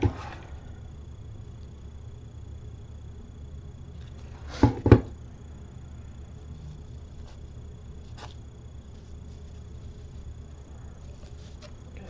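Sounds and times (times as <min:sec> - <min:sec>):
faint high-pitched whine: 0:00.0 - 0:12.0
low background hum: 0:00.0 - 0:12.0.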